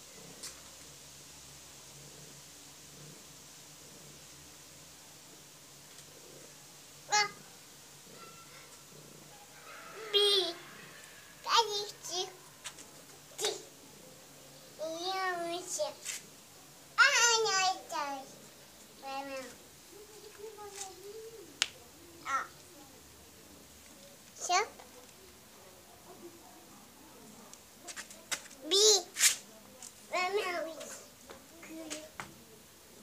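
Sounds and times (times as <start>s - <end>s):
child's drawn-out voice: 7.1s - 7.4s, 10.0s - 10.6s, 11.4s - 12.4s, 17.0s - 18.4s, 19.0s - 21.5s, 22.2s - 22.6s, 28.6s - 29.1s, 30.1s - 32.2s.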